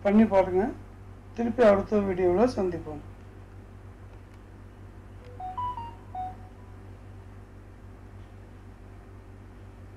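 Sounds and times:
low hum: 5.2 - 7.7
computer chime beeps: 5.3 - 6.8.

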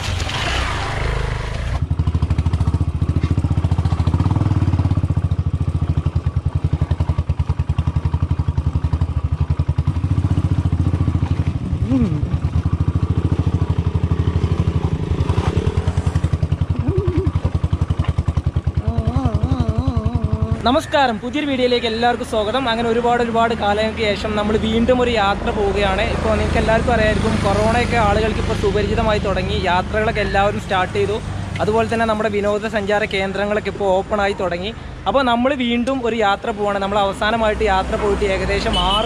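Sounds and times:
motorcycle engine thumping: 0.0 - 20.7
tyres on stony track: 2.9 - 4.2, 9.0 - 18.8.

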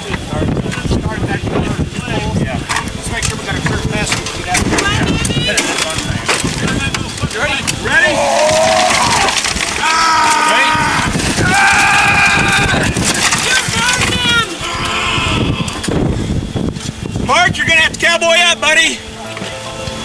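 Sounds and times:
debris clattering and scraping: 2.6 - 14.6
people shouting: 7.8 - 15.9.

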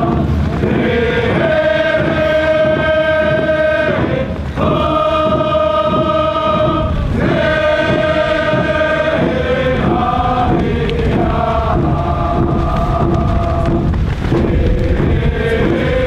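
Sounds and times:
steady drum beat: 0.0 - 16.0
voices chanting in held notes: 0.0 - 16.0.

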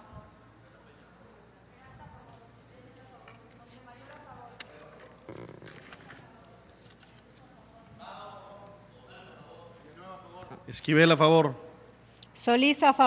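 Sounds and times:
faint murmur of voices: 0.0 - 10.8.

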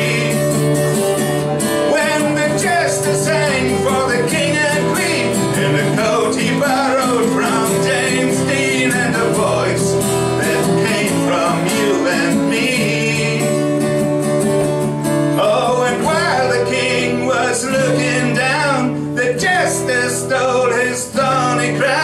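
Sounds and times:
man singing: 0.0 - 1.0, 1.8 - 13.8, 15.4 - 22.0
acoustic guitar: 0.0 - 22.0.

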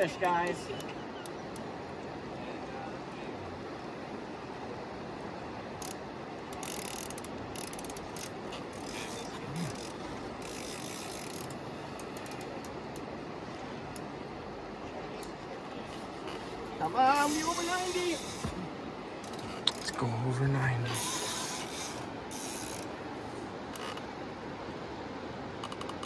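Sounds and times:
river noise: 0.0 - 26.0
fishing reel clicking: 5.8 - 13.1, 20.9 - 22.9.

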